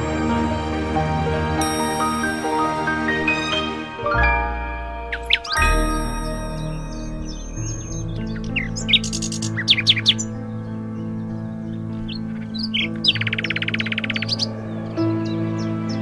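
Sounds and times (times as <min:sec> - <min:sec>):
soft background music: 0:00.0 - 0:16.0
songbird chirping: 0:03.5 - 0:16.0
bird trill: 0:05.0 - 0:16.0.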